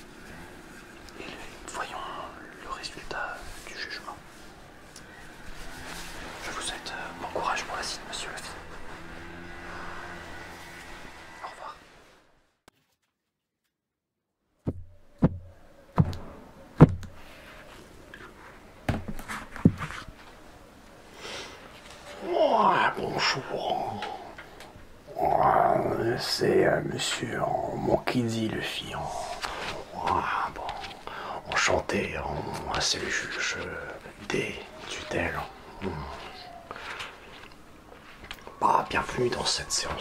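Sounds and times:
person whispering: 1.1s - 4.5s, 6.3s - 9.0s, 11.4s - 11.9s, 22.2s - 37.5s, 38.3s - 40.0s
person making wordless vocal sounds: 22.2s - 36.9s.

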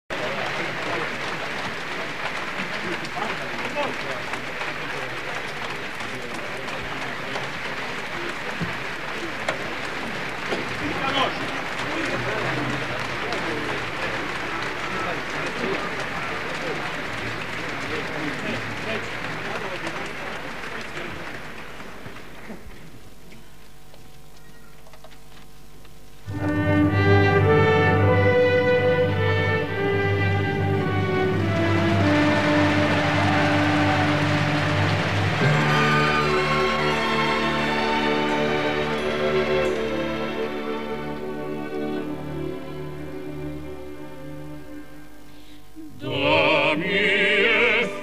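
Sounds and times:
audience applauding: 0.1s - 23.7s, 26.3s - 43.7s
voices in crowd: 0.1s - 23.7s.

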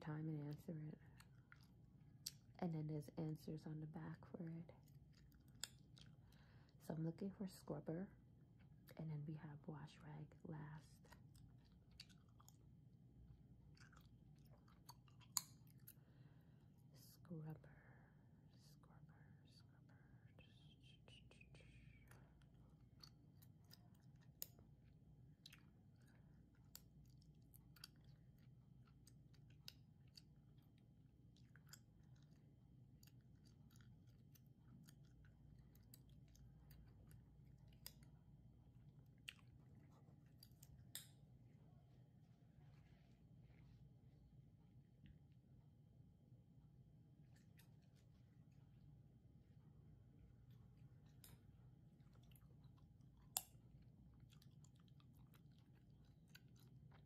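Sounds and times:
gum chewing: 4.8s - 6.3s, 11.1s - 12.8s, 13.6s - 16.0s, 21.9s - 38.2s, 39.0s - 41.1s, 51.0s - 57.0s.

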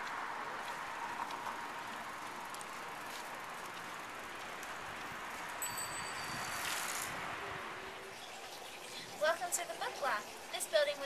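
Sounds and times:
high ringing tone: 5.6s - 7.0s
traffic hiss: 6.3s - 11.0s.

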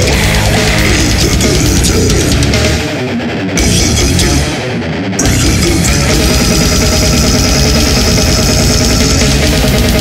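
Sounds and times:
fast dense drumming: 0.0s - 2.9s, 3.6s - 4.5s, 5.2s - 10.0s
distorted guitars: 0.0s - 10.0s.

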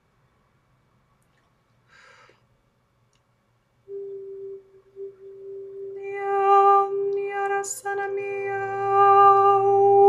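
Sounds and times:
woman humming a held note: 3.9s - 10.0s.

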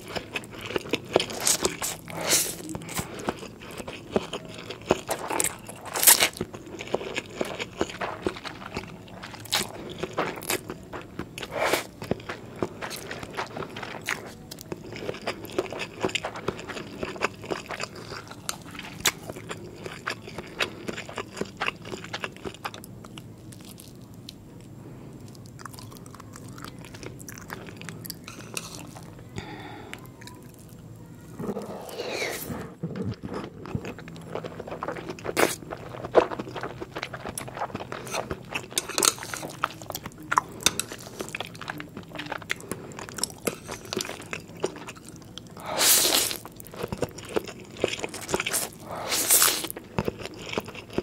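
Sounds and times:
chewing: 0.0s - 30.8s, 31.4s - 51.0s
slurping noodles: 1.3s - 3.3s, 31.4s - 33.3s, 45.6s - 46.4s, 48.3s - 49.7s.

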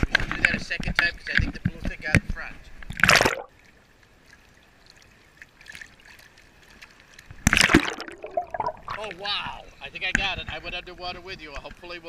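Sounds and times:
water splashing: 2.8s - 9.6s.

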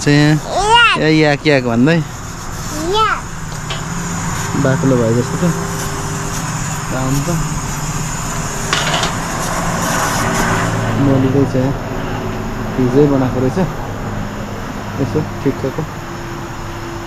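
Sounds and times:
voices: 0.0s - 16.1s
low mechanical hum: 0.0s - 17.0s.

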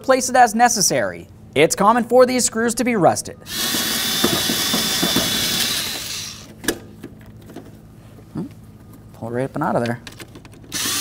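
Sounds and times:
cordless drill spinning: 3.5s - 6.5s, 10.7s - 11.0s.

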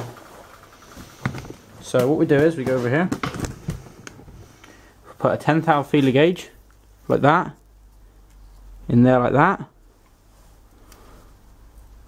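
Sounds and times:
person speaking: 1.8s - 3.2s, 5.1s - 9.8s.

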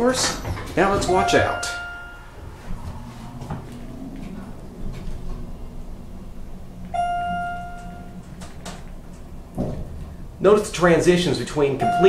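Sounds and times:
elevator chime: 0.0s - 5.2s, 6.9s - 8.5s, 11.8s - 12.0s
elevator car humming: 0.0s - 12.0s.

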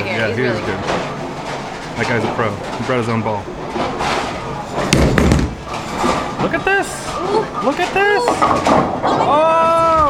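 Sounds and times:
bowling ball rolling rumble: 0.8s - 9.3s
bowling ball thud: 3.8s - 6.4s, 8.2s - 9.3s.

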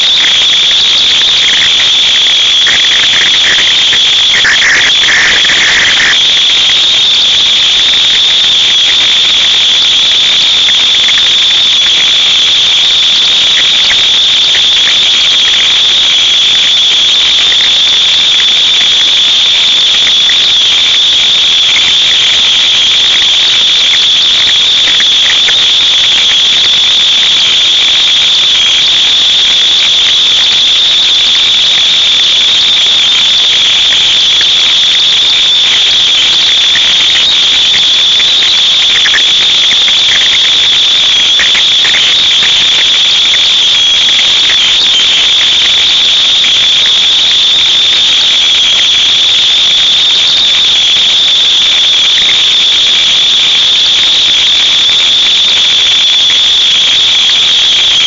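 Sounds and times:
high-pitched hiss: 0.0s - 29.6s.

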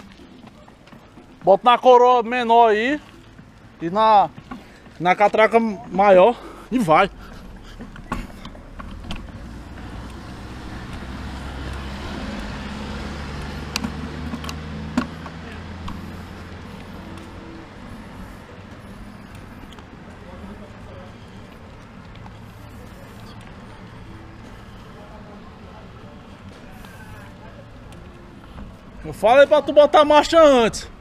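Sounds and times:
road and wind noise: 0.0s - 31.0s
car passing by: 6.8s - 29.5s.

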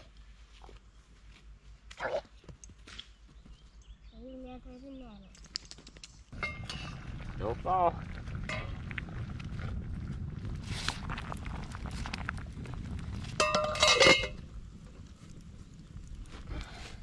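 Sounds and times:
campfire crackling: 5.3s - 17.0s
metal pot clanking: 6.4s - 7.0s, 8.4s - 8.8s, 13.4s - 14.4s.

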